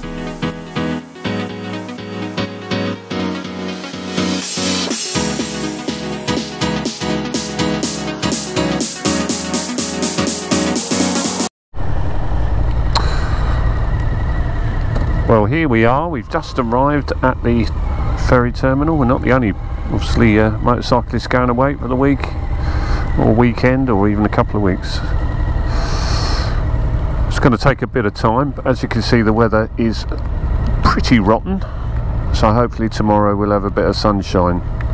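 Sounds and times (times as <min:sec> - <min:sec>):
electronic music: 0:00.0 - 0:22.5
motorcycle engine idling: 0:11.9 - 0:34.9.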